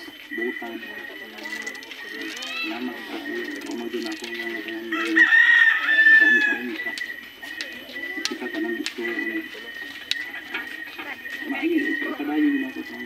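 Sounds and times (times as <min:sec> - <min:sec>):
faint background voices: 0:00.0 - 0:13.0
rooster crowing: 0:04.8 - 0:06.8.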